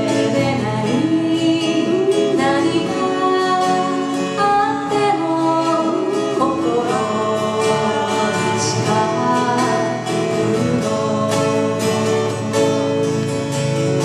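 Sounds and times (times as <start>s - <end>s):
woman and man singing: 0.0s - 13.1s
acoustic guitars strummed: 0.0s - 14.0s.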